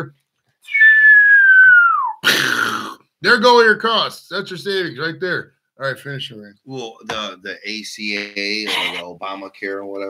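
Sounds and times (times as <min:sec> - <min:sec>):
person whistling descending note: 0:00.7 - 0:02.2.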